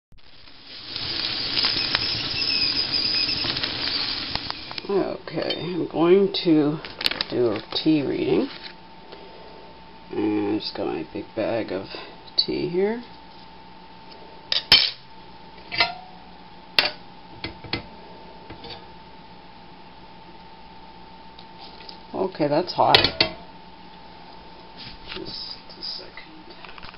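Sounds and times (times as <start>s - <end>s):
crackles: 0.1s - 5.3s, 5.9s - 10.2s, 20.0s - 22.2s
kettle hissing: 0.1s - 26.9s
faint steady hum: 0.2s - 26.9s
faint kettle whistle: 0.9s - 4.8s
dishware clinking: 15.7s - 16.1s, 23.0s - 23.4s.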